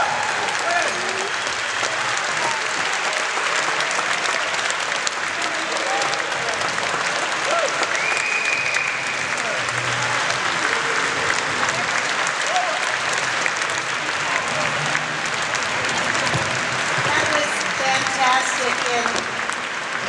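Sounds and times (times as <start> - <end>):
audience applauding: 0.0 - 20.0
voices and cheers: 0.0 - 20.0.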